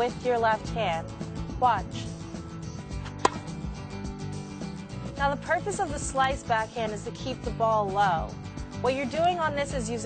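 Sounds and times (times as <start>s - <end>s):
background music: 0.0s - 10.0s
tennis ball hit by racket: 3.0s - 3.7s.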